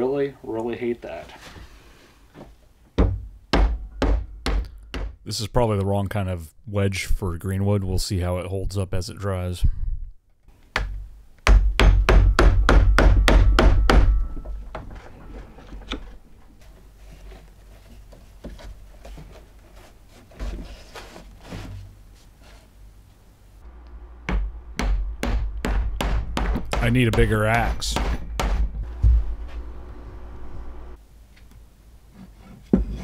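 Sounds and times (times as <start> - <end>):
mallet striking chisel into wood: 3.0 - 5.2, 10.8 - 14.3, 24.3 - 28.7.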